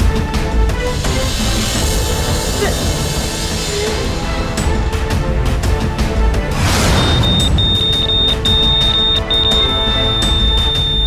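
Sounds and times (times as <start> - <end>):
dramatic background music: 0.0 - 11.0
patient monitor alarm beeps: 7.0 - 11.0.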